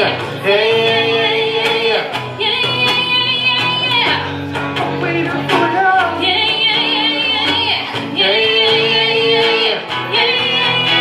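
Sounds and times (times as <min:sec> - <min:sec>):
guitar: 0:00.0 - 0:11.0
woman and man singing duet: 0:00.0 - 0:11.0.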